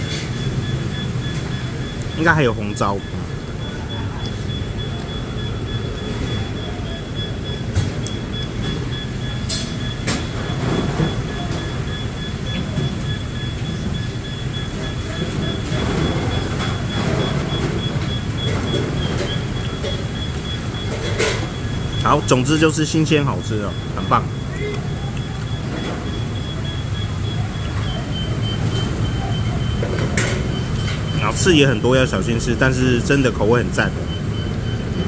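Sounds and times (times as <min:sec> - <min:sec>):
road traffic rumble: 0:00.0 - 0:35.0.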